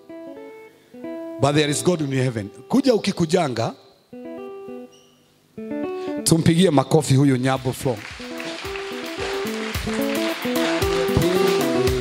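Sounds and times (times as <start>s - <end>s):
instrumental music: 0.0s - 2.7s, 4.0s - 6.3s, 8.1s - 12.0s
congregation clapping: 7.6s - 12.0s.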